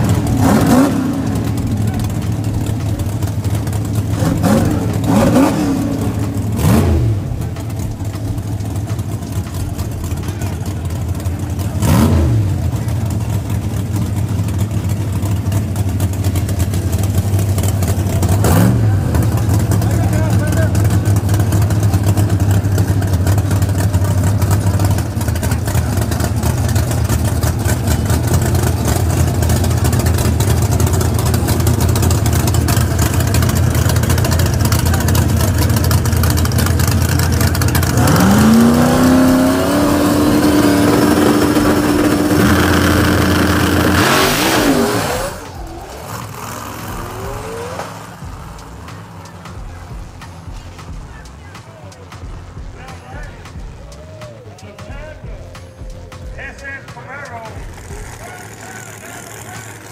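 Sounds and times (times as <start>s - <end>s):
engine revving: 0.0s - 54.0s, 55.1s - 59.9s
race car engines running: 0.0s - 59.9s.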